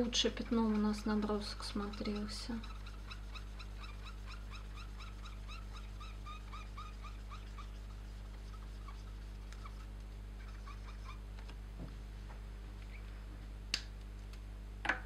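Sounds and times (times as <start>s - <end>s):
marker squeaking on paper: 0.3s - 11.2s.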